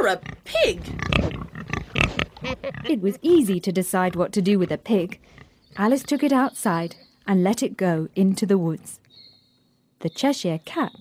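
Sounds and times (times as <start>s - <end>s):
pig grunting: 0.0s - 3.2s.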